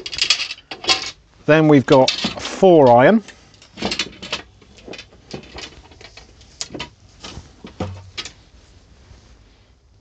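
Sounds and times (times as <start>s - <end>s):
rustling handling noise: 0.0s - 10.0s.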